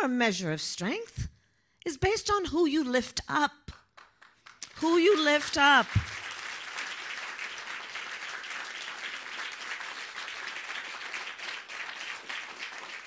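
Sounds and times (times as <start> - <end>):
audience applauding: 4.0 - 13.0.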